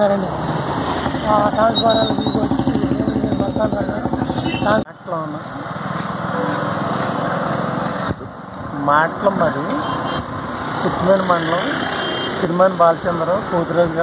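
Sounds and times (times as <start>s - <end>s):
engine and traffic hum: 0.0s - 14.0s.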